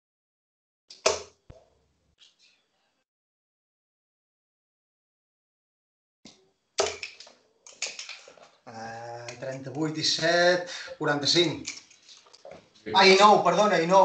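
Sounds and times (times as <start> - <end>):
dart hitting dartboard: 1.0 - 1.4, 6.8 - 7.2.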